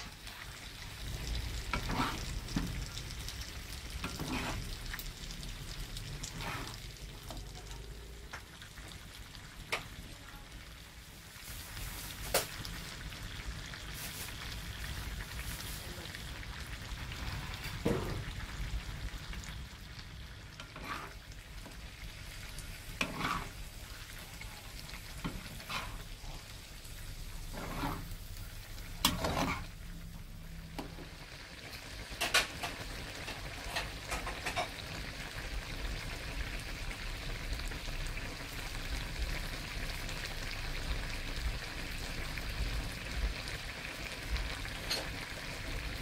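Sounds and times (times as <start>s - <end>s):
food sizzling in a pan: 0.0s - 46.0s
utensil scraping through food: 1.6s - 2.7s, 4.0s - 4.8s, 6.2s - 6.9s, 20.6s - 21.2s, 22.9s - 23.7s, 25.1s - 26.4s, 27.3s - 28.2s, 29.0s - 29.8s.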